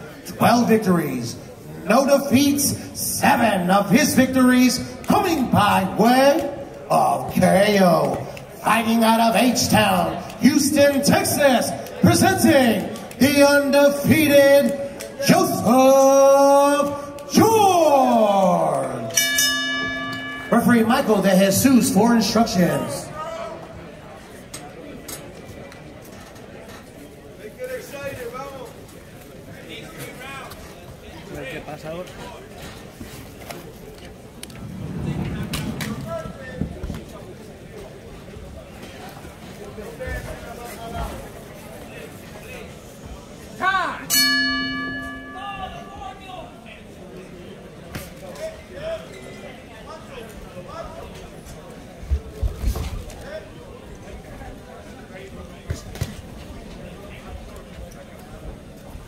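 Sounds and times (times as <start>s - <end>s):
steady ringing tone: 19.2s - 21.3s, 44.1s - 46.3s.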